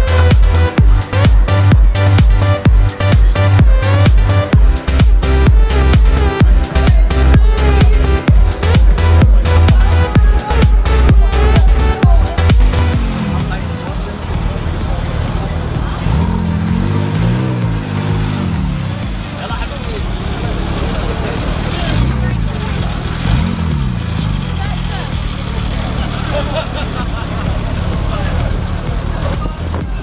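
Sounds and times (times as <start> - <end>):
background music: 0.0 - 30.0
car engine idling and revving: 0.0 - 30.0
crowd chatter: 0.0 - 30.0.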